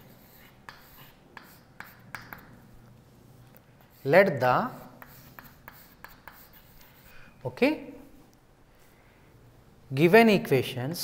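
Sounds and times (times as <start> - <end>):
chalk tapping and scratching: 0.0 - 2.7, 3.5 - 7.2.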